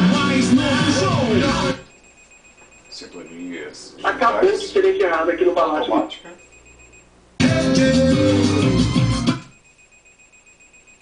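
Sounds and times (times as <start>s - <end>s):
radio music and voice: 3.0s - 6.4s.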